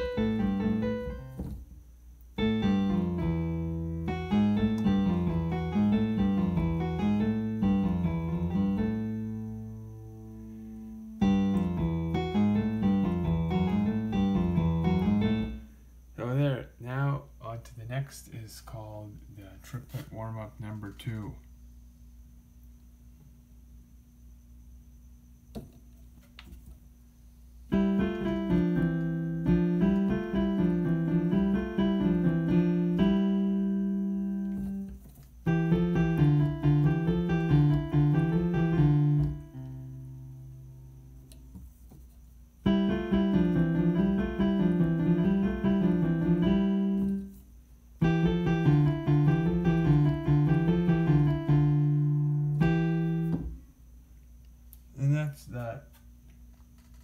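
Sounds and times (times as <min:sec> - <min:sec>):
piano playing triplet exercise: 0:00.0 - 0:01.5, 0:02.4 - 0:15.7, 0:27.7 - 0:41.0, 0:42.6 - 0:47.2, 0:48.0 - 0:53.6.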